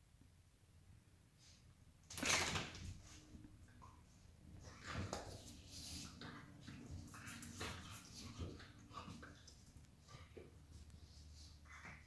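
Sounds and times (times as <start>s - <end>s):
dogs scuffling on a mat: 4.7s - 11.9s.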